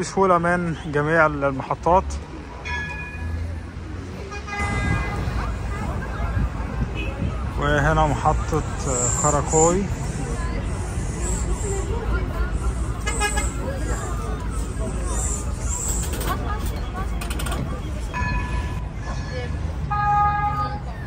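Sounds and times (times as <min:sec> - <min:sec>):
low traffic rumble: 0:00.0 - 0:21.0
people chattering: 0:00.0 - 0:21.0
steady horn tone: 0:04.3 - 0:05.4, 0:13.0 - 0:13.6.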